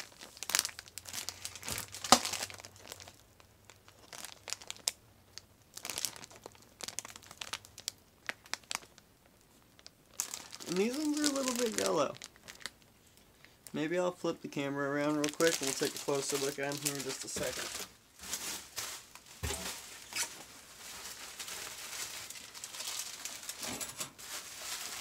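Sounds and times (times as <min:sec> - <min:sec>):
plastic bags crinkling: 0:00.0 - 0:09.0, 0:09.8 - 0:13.2, 0:15.0 - 0:25.0.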